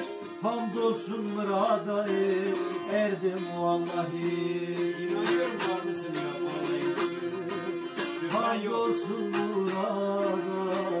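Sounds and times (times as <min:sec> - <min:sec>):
long-necked lutes playing folk music: 0:00.0 - 0:11.0.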